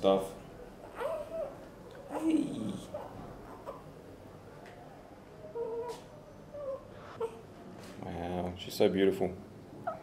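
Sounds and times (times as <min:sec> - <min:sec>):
newborn baby whimpering: 0:00.8 - 0:03.9, 0:05.5 - 0:07.4.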